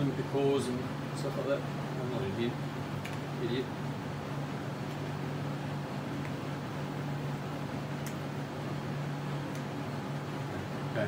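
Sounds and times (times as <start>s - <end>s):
computer cooling fan hum: 0.0s - 11.0s.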